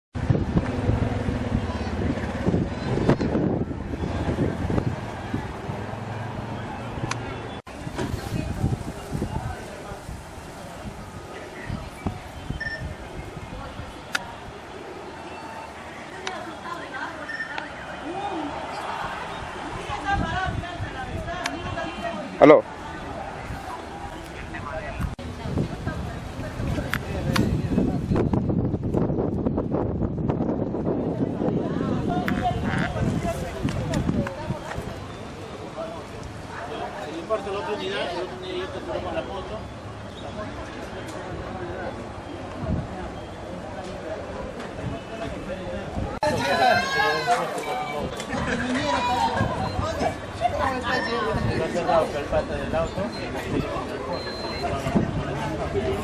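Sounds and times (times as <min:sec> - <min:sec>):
wind rumble on microphone: 0:00.2 - 0:14.6, 0:19.4 - 0:21.9, 0:24.8 - 0:35.2, 0:42.4 - 0:43.2, 0:44.7 - 0:46.4, 0:47.9 - 0:50.6, 0:54.6 - 0:56.0
indistinct voices: 0:30.8 - 0:56.0.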